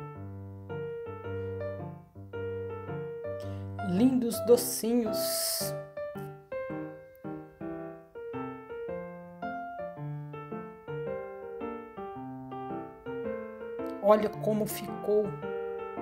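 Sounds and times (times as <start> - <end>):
gentle piano music: 0.0 - 16.0.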